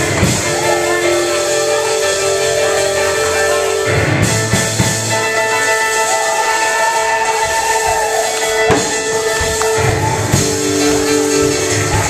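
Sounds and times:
organ holding a sustained chord: 0.0s - 12.0s.

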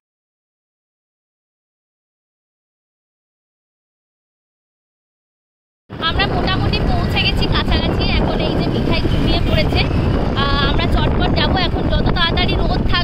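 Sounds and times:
wind rumble on microphone: 5.9s - 13.0s
woman talking: 6.0s - 13.0s.

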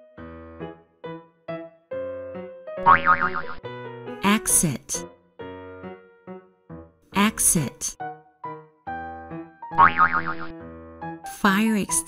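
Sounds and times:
light background music: 0.0s - 12.0s
cartoon boing sound effect: 2.8s - 3.6s, 9.8s - 10.6s.

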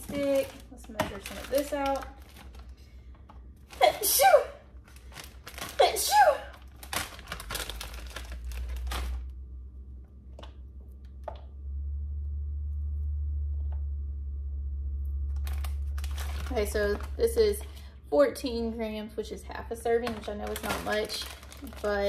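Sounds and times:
plastic packet crinkling: 0.0s - 2.8s, 4.8s - 9.4s, 15.3s - 17.8s, 19.8s - 22.0s
steady low hum: 0.0s - 22.0s.

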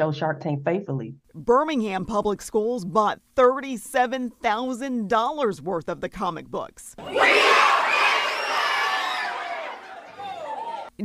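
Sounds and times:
children cheering and shouting: 7.0s - 10.9s.

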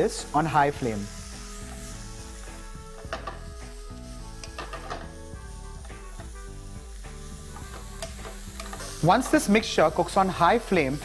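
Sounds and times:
vegetables sizzling in hot oil: 0.0s - 11.0s.

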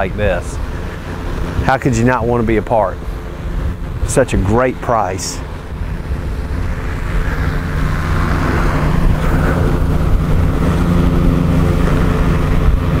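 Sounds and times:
vehicle engine running: 0.0s - 13.0s.

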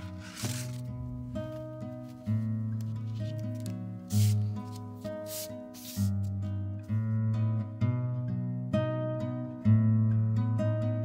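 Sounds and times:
hand rubbing on paper: 0.0s - 0.9s, 1.5s - 6.3s
soft plucked guitar music: 0.0s - 11.0s.

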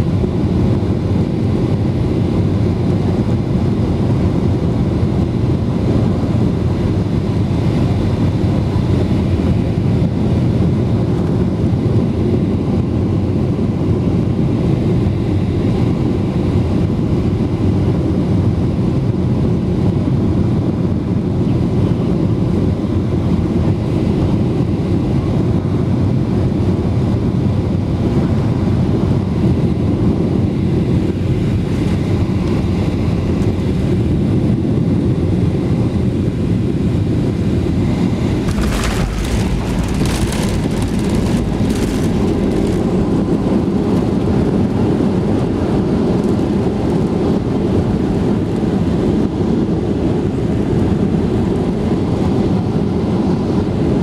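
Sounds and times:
airplane engines and airflow rumble: 0.0s - 54.0s.

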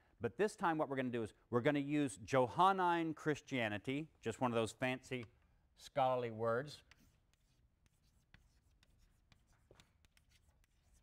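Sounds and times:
chalk writing on blackboard: 6.6s - 11.0s.

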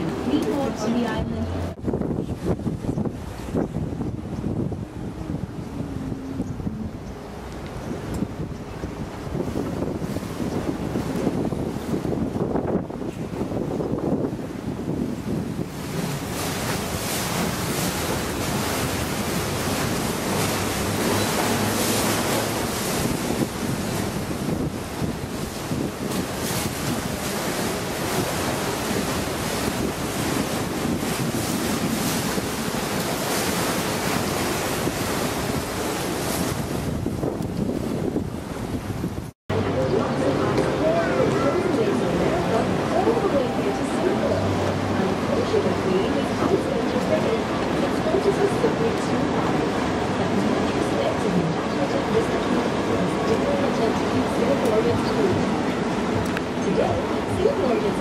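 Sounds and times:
boat engine running: 0.0s - 58.0s
water rushing past boat: 0.0s - 58.0s
wind buffeting microphone: 0.0s - 58.0s.

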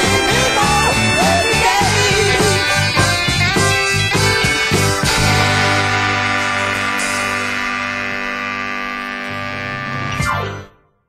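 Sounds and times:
rock band chord ringing: 0.0s - 10.6s.

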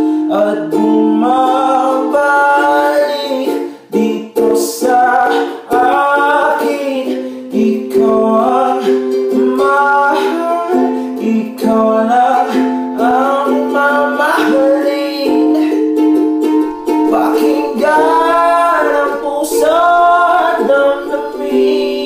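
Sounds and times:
ukulele strumming: 0.0s - 22.0s
young man singing: 0.0s - 22.0s.

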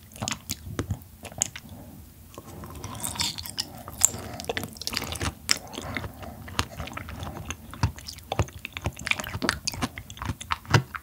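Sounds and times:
person chewing: 0.0s - 11.0s.

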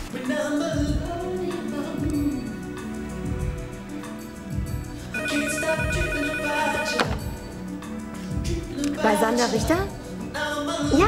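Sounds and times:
background music: 0.0s - 11.0s
telephone ringing: 5.1s - 7.5s.

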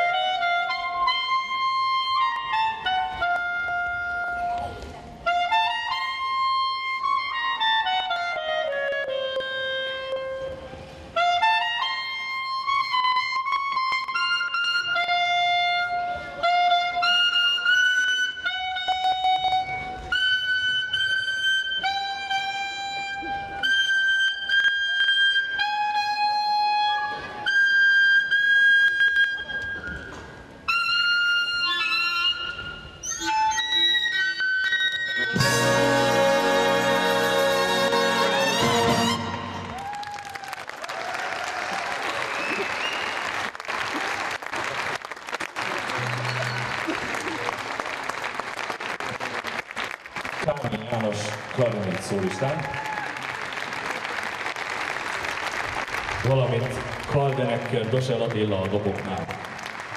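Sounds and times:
solo clarinet melody: 0.0s - 40.0s.

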